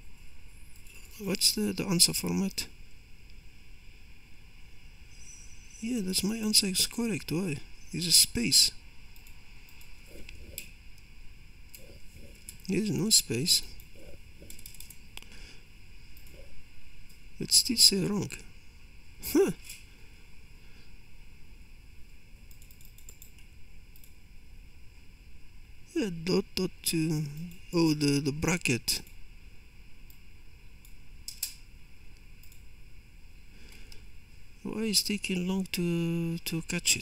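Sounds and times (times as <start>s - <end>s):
steady background hiss: 0.0s - 37.0s
keyboard and mouse clicks: 13.8s - 15.0s, 22.5s - 24.1s.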